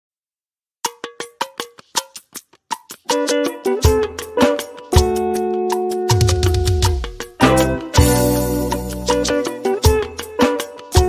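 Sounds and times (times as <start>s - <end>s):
pitched percussion strikes: 0.9s - 11.0s.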